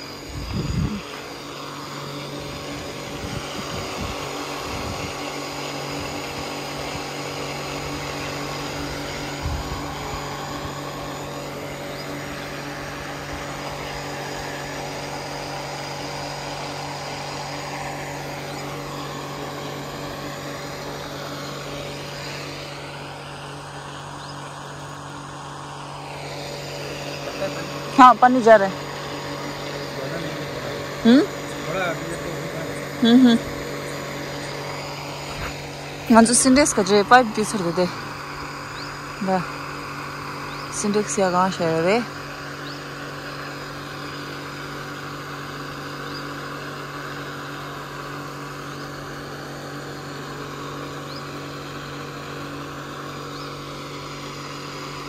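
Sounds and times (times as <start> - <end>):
water pump motor humming: 0.0 - 55.0.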